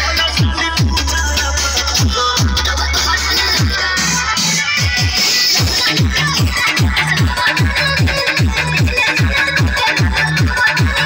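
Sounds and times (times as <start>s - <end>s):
electronic dance music: 0.0s - 11.0s
deep kick drum: 0.4s - 1.0s.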